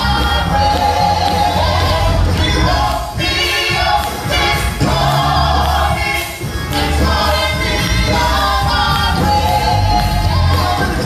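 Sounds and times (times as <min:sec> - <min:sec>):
choir singing gospel: 0:00.0 - 0:11.0.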